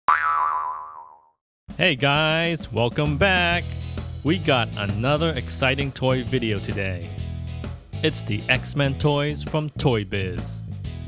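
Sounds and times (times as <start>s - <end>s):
cartoon boing: 0.1s - 1.4s.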